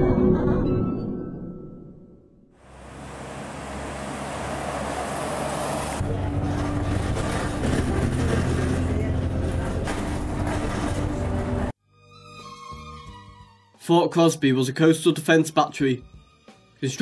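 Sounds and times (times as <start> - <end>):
vehicle approaching: 2.6 - 11.7
bus engine drone: 2.6 - 11.8
road traffic noise: 2.6 - 11.8.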